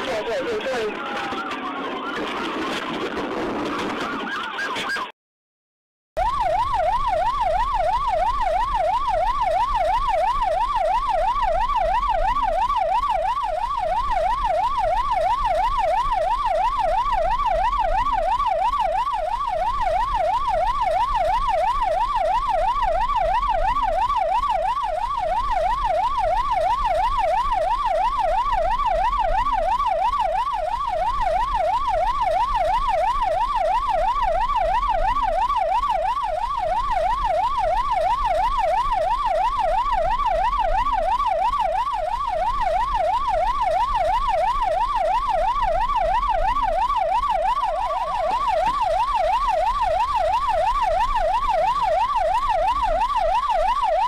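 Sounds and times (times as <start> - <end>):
police siren warbling: 0.0 - 5.1, 6.2 - 54.0.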